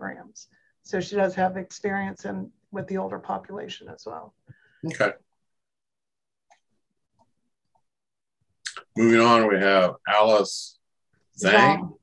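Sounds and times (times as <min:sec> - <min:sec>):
man speaking: 0:11.4 - 0:11.9.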